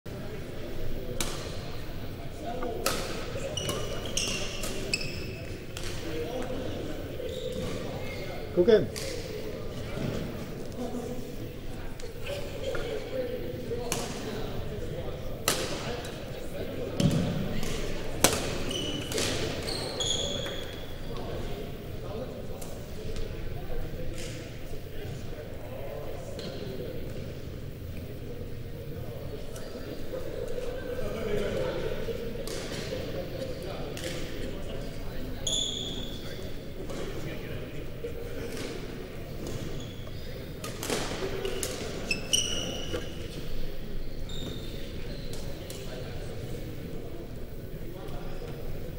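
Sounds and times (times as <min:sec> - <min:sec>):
echoing chatter: 0:00.1 - 0:48.9
sneakers squeaking on court: 0:03.0 - 0:08.5, 0:17.0 - 0:21.3, 0:35.4 - 0:37.1, 0:38.6 - 0:46.0.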